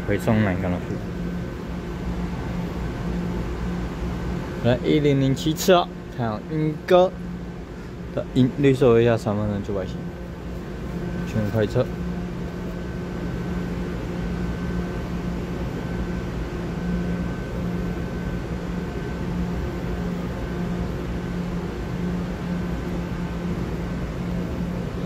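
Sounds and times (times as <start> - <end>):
electric train humming: 0.0 - 25.0
faint high whine: 0.0 - 25.0
low pulsing drone: 0.0 - 25.0.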